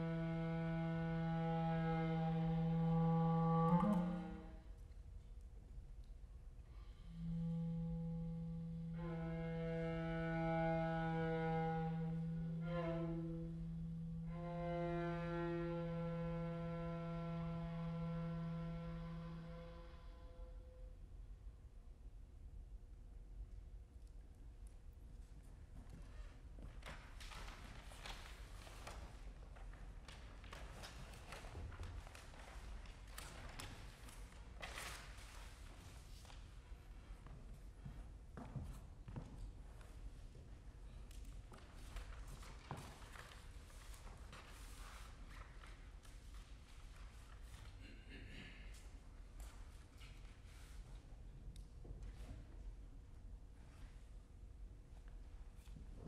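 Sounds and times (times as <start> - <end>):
clarinet sustained note: 0.0 - 4.6, 6.9 - 20.8
viola sustained note: 0.0 - 4.7, 6.8 - 20.9.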